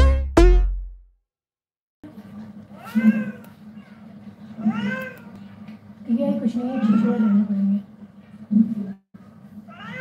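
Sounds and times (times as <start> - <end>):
cat meowing: 2.8 - 5.4, 6.7 - 7.6, 9.7 - 10.0.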